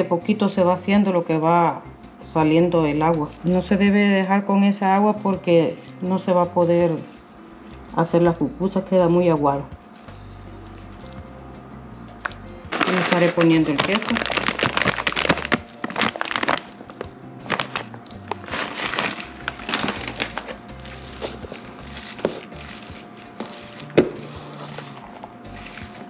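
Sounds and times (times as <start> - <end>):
background music: 0.0 - 26.0
plastic bag crinkling: 12.2 - 26.0.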